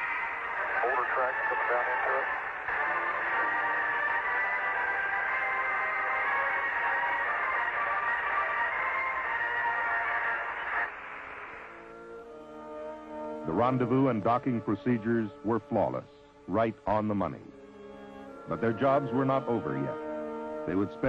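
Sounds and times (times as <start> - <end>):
soft low music: 0.0 - 21.0
thin music over radio: 0.0 - 21.0.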